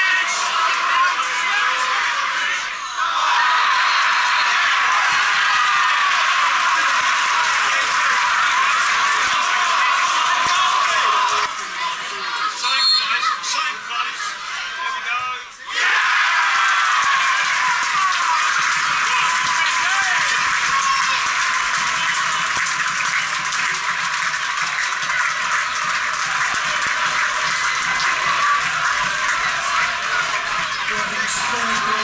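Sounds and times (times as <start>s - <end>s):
crowd shouting and cheering: 0.0s - 32.0s.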